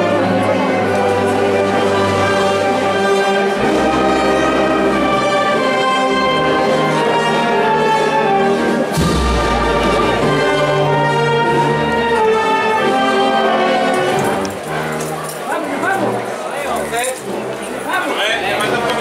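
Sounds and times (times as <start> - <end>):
brass band playing a march: 0.0 - 19.0.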